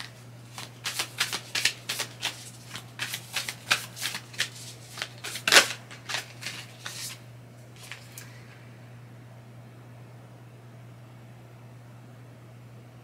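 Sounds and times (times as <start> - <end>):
cards being shuffled by hand: 0.0 - 8.3.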